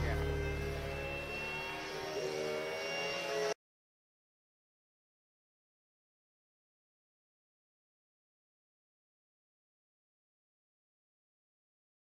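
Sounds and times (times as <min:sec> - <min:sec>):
rock chord ringing out: 0:00.0 - 0:02.8.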